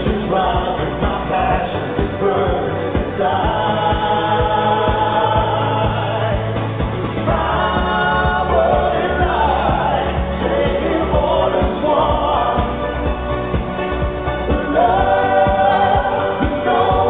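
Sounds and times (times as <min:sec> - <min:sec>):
person singing: 0:00.0 - 0:06.6, 0:07.2 - 0:13.2, 0:14.5 - 0:17.0
steady drum beat: 0:00.0 - 0:17.0
sustained bass line: 0:00.0 - 0:17.0.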